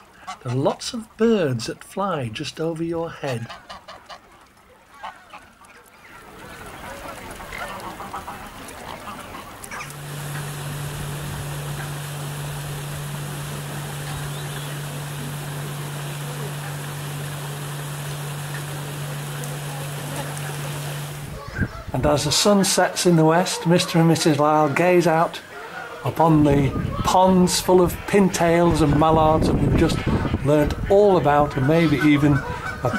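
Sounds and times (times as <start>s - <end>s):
geese honking: 0.0s - 1.1s, 2.6s - 32.9s
ducks quacking: 0.0s - 1.2s, 2.6s - 32.9s
steady low hum: 6.2s - 22.6s
even hiss: 9.6s - 25.5s.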